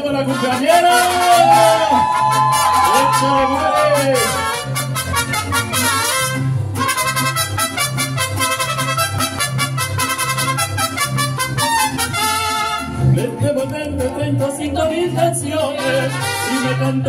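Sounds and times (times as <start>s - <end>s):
trumpets playing melody: 0.0s - 13.2s, 15.8s - 17.0s
strummed guitars: 0.0s - 17.0s.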